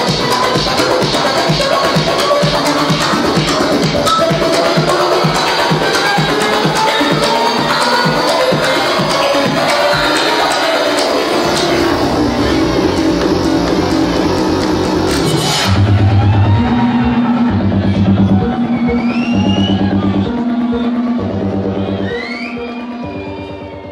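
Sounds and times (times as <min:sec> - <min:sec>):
electronic dance music: 0:00.0 - 0:23.9.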